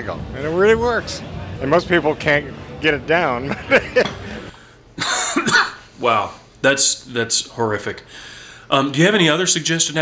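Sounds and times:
man laughing: 3.4 - 4.4, 5.0 - 5.5
man coughing: 5.0 - 5.9.

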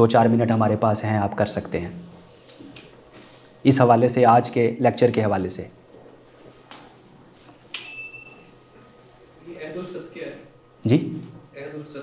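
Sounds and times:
brief high ringing tone: 7.8 - 8.5.

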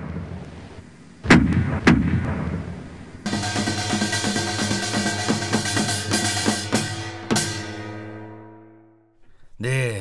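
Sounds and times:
cannon shots booming: 0.0 - 0.6, 1.2 - 3.2.

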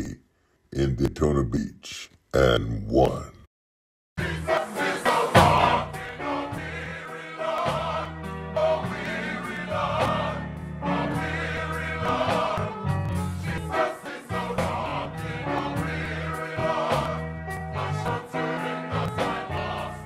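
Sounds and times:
choir singing gospel song: 4.2 - 20.0.

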